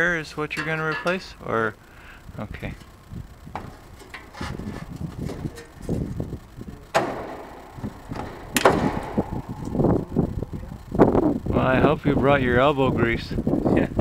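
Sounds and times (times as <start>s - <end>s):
pliers clanking on metal: 0.5s - 1.4s
ringing metallic knocks: 0.5s - 1.4s, 6.9s - 10.5s.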